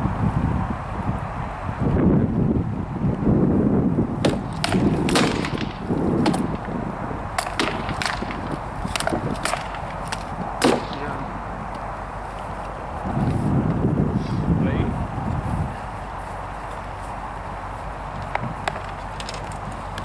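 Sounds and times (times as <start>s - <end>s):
wind rumble on microphone: 0.0s - 20.0s
swords striking shields: 4.2s - 6.5s, 7.4s - 11.2s.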